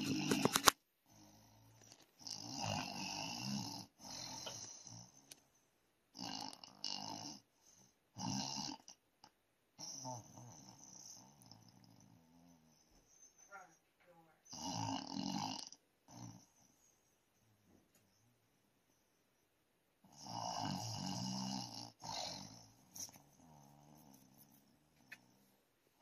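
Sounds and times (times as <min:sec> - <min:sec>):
person snoring: 0:00.0 - 0:05.2, 0:06.2 - 0:07.5, 0:08.2 - 0:09.0, 0:09.8 - 0:12.8, 0:14.5 - 0:16.7, 0:20.1 - 0:24.2.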